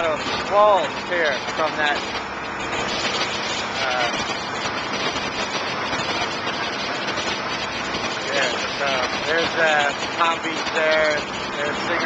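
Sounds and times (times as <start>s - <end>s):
churning water: 0.0s - 12.0s
motorboat engine: 0.0s - 12.0s.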